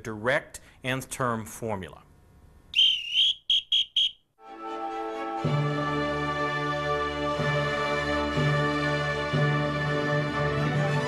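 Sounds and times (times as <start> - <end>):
high whistled tones: 2.7 - 4.3.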